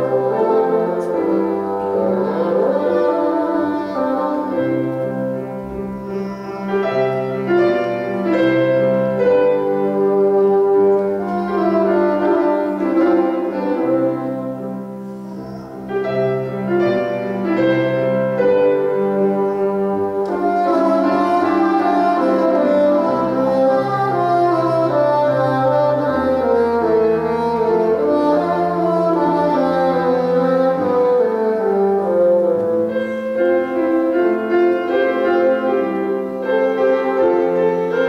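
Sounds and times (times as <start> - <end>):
piano accompaniment: 0.0 - 38.0
solo bassoon melody: 0.0 - 38.0.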